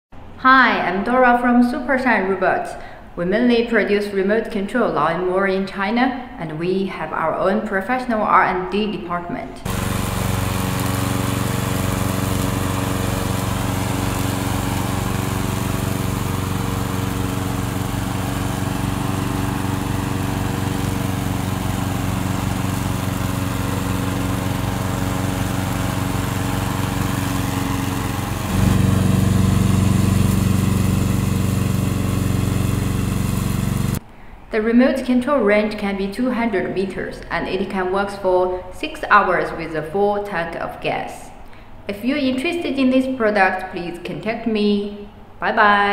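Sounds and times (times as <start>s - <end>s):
lawn mower engine running: 9.6s - 34.0s.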